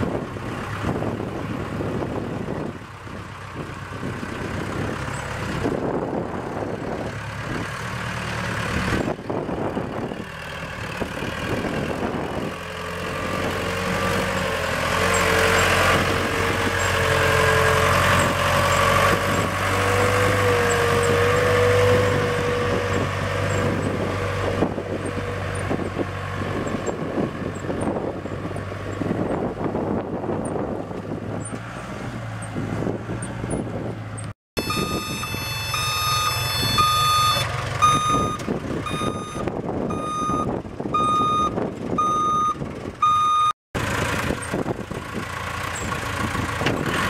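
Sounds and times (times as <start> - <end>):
diesel backhoe engine driving past: 0.0 - 47.0
steady engine whine: 32.4 - 43.2.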